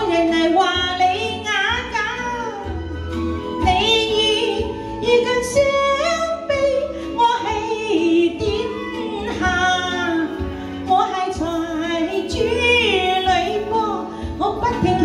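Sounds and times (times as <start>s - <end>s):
backing music: 0.0s - 15.0s
woman singing into microphone: 0.0s - 15.0s.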